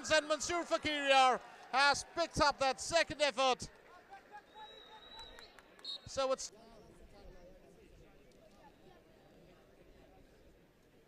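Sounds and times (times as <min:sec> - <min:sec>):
high referee whistle: 0:04.4 - 0:06.3.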